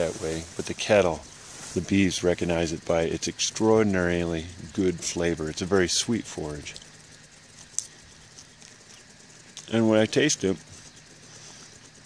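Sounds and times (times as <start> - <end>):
man chewing with faint crunching: 6.7 - 9.8, 10.6 - 12.0.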